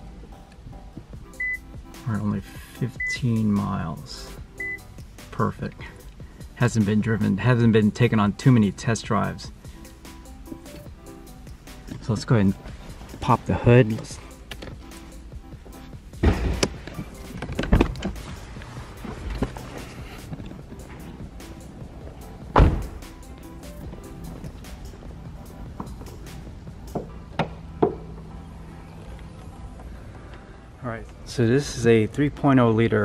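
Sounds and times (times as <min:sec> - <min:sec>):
background music: 0:00.0 - 0:33.0
car hood clunks: 0:16.2 - 0:21.2, 0:22.4 - 0:23.2.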